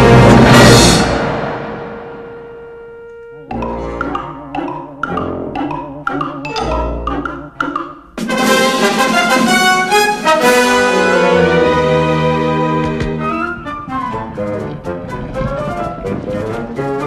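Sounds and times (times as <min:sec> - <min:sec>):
orchestral cartoon music with brass: 0:00.0 - 0:17.0.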